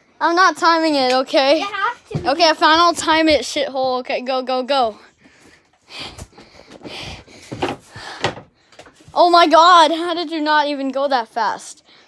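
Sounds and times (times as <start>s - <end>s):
thumps and knocks on furniture: 6.2s - 8.5s.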